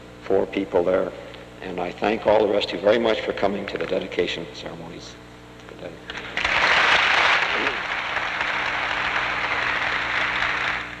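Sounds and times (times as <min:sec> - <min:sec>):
audience applauding: 0:06.2 - 0:11.0.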